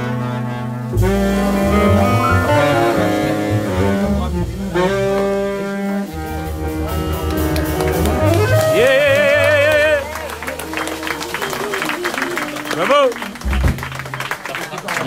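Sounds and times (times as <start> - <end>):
saxophone long vibrato note: 0.0 - 13.5
jazz band playing: 0.0 - 14.4.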